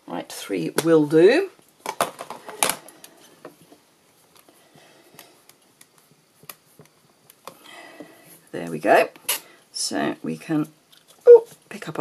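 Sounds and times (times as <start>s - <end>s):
person speaking: 11.3s - 12.0s.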